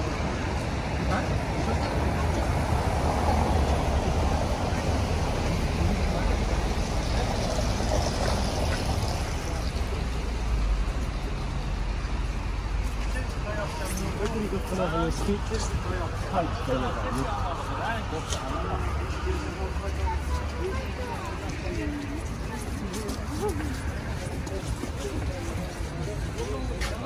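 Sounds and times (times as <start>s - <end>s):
indistinct voices: 0.0s - 27.0s.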